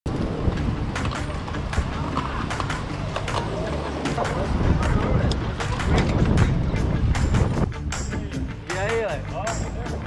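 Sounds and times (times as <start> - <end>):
bike clicks and rattles: 0.1 - 7.6
wind noise on microphone: 0.1 - 8.8
voices of riders: 0.2 - 10.0.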